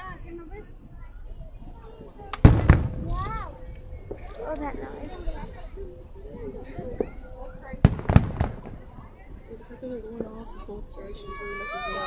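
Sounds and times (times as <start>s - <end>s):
firework bursts with rumbling tail: 2.4s - 4.2s, 7.8s - 9.4s.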